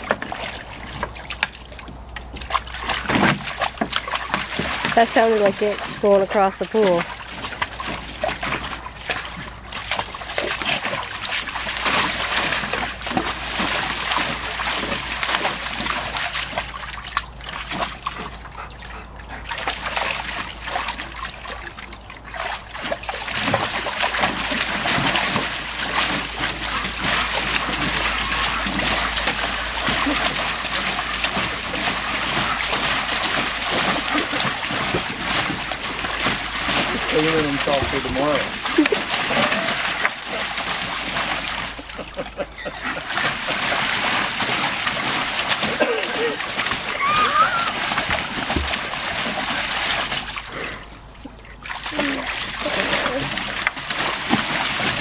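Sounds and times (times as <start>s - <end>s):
dog splashing in water: 0.0s - 55.0s.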